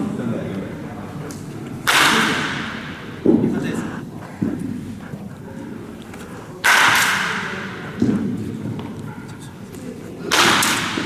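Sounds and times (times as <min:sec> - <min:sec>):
baseball bat cracking ball: 0:01.8 - 0:03.5, 0:06.6 - 0:09.0, 0:10.3 - 0:11.0.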